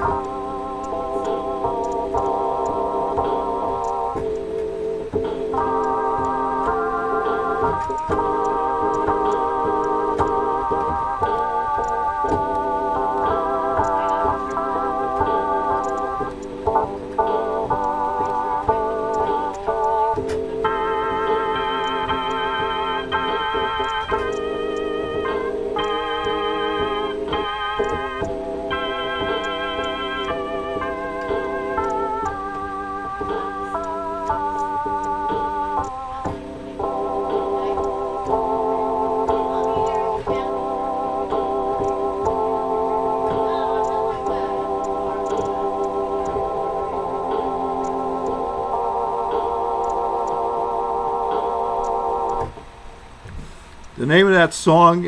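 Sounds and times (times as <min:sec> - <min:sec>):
electronic organ chords: 0:00.0 - 0:53.3.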